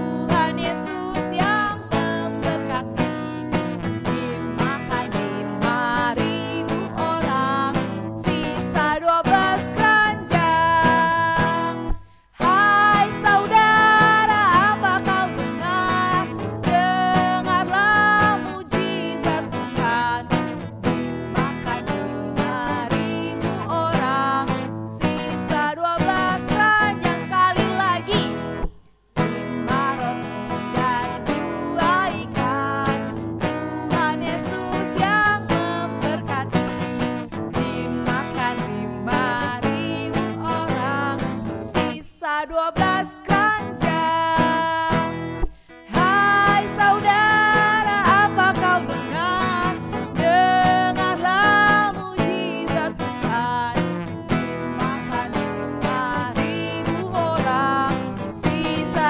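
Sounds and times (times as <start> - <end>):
strummed acoustic guitar: 0.0 - 59.0
woman singing into microphone: 0.0 - 59.0
women's voices singing along: 29.7 - 36.5, 45.9 - 53.8, 54.8 - 59.0.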